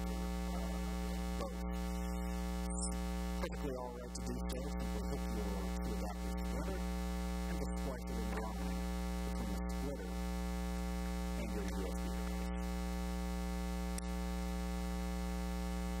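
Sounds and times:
electrical mains hum: 0.0 - 16.0.

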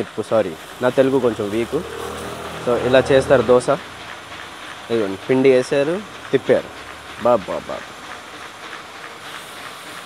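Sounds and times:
batter sizzling on a griddle: 0.0 - 10.0.

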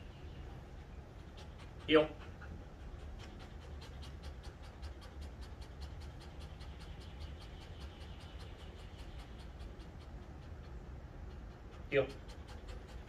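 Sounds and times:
dog panting: 0.0 - 13.0.

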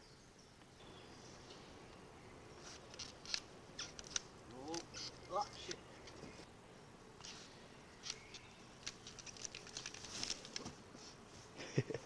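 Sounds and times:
clicks and crackles on forest floor: 2.6 - 6.5, 7.2 - 11.5.

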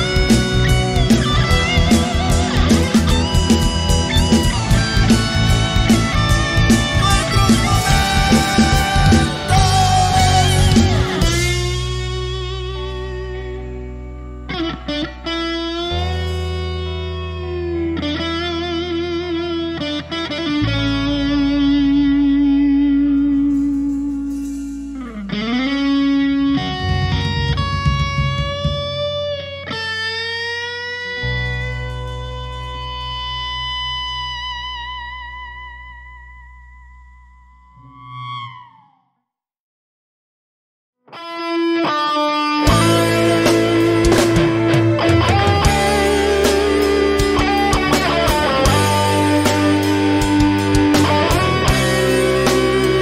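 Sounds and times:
sustained bass notes: 0.0 - 38.8, 42.6 - 53.0
electric guitar held notes: 0.0 - 39.0, 41.1 - 53.0.

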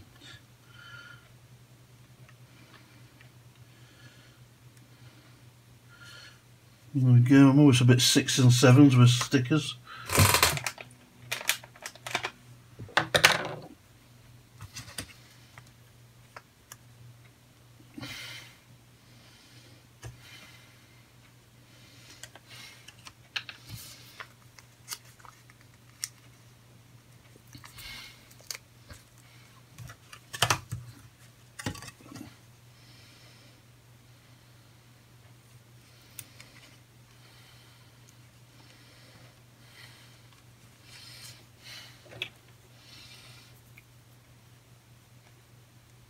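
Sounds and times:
faint low hum: 0.0 - 46.0
plastic parts clicking and tapping: 10.1 - 13.7, 29.8 - 32.2.

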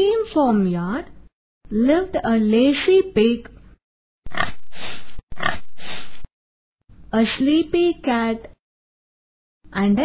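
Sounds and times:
pig grunting: 4.3 - 4.6, 5.3 - 5.7.

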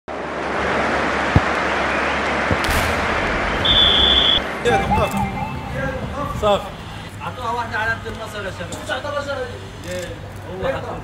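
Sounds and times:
rushing whoosh: 2.6 - 7.3
steady high tone: 4.4 - 7.7.

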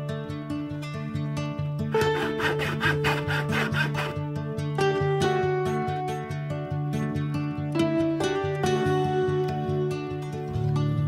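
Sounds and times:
plucked string music: 0.0 - 11.0
saw cutting wood: 1.9 - 4.3.

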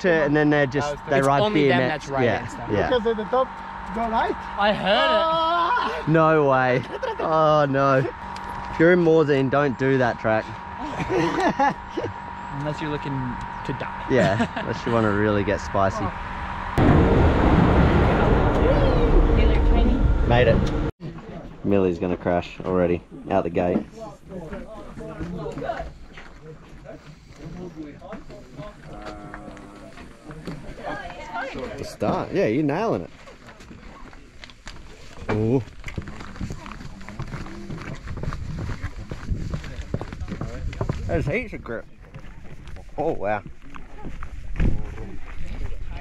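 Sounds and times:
gondola lift machinery rumbling: 0.0 - 20.9
background voices talking: 11.9 - 34.4
footsteps on matted wooden ramp: 33.0 - 41.4.

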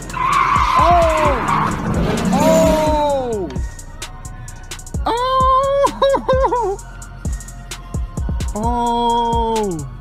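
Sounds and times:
tyres screeching: 0.0 - 3.6
car engine revving: 0.0 - 4.2.

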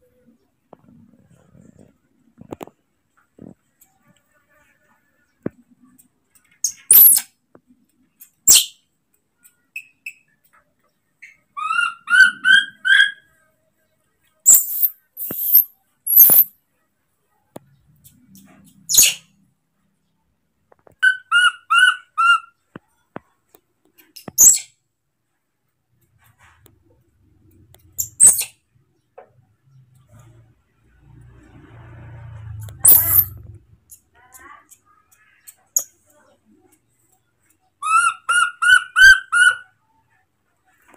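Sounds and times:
monkey chirping: 6.6 - 7.3, 11.2 - 13.3, 14.5 - 16.5, 21.0 - 22.6, 24.2 - 24.7, 27.9 - 28.6, 32.8 - 34.0, 37.8 - 39.7
monkey screeching: 11.6 - 13.3, 14.5 - 16.5, 21.0 - 22.5, 32.8 - 33.3, 37.8 - 39.7.

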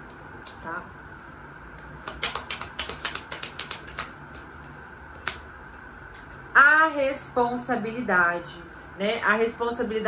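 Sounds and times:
cards being shuffled: 2.0 - 4.5.

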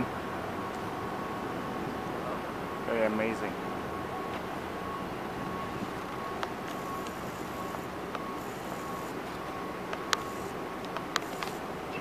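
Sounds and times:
passing traffic: 0.0 - 12.0.

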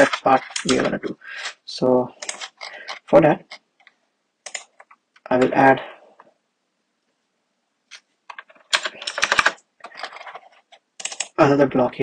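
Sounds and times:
computer keyboard typing: 0.0 - 1.0, 2.2 - 3.6, 4.4 - 5.0, 7.9 - 11.4.

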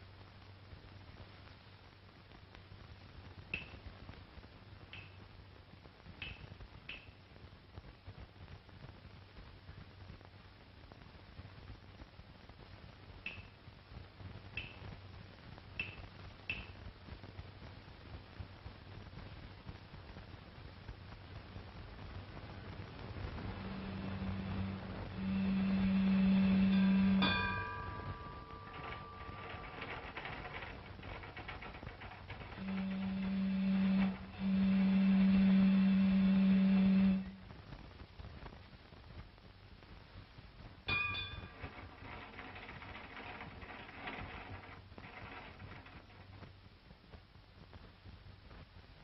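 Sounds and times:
faint crackle and ticking: 0.0 - 49.0
faint low hum and hiss: 0.0 - 49.0.

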